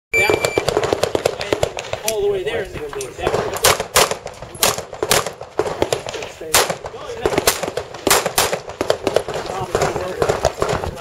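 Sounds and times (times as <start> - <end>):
shot timer start beep: 0.1 - 0.7
rapid gunfire cracks: 0.5 - 2.2, 3.2 - 11.0.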